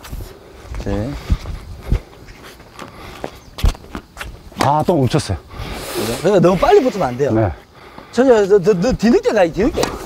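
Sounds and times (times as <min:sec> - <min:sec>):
footsteps on hard court: 0:00.0 - 0:05.0
tennis ball knocks: 0:09.8 - 0:10.0.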